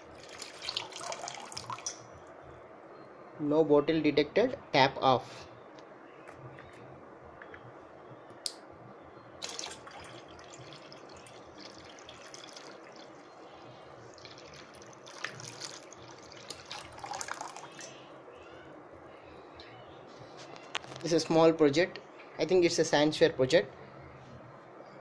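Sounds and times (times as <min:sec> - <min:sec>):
water pouring into a metal bowl: 0:00.1 - 0:02.0, 0:09.4 - 0:13.4, 0:14.1 - 0:18.0
water splashing and dripping: 0:09.4 - 0:13.2, 0:14.1 - 0:17.9.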